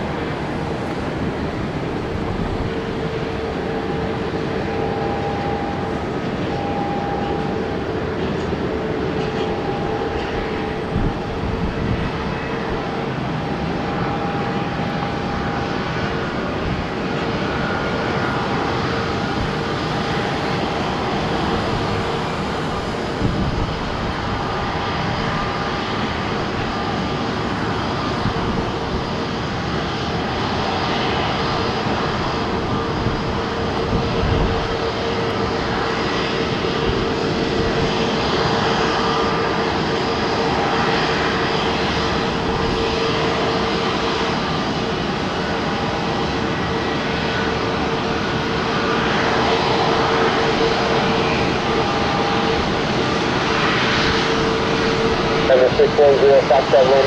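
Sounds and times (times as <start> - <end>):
jet engines roaring: 0.0 - 57.0.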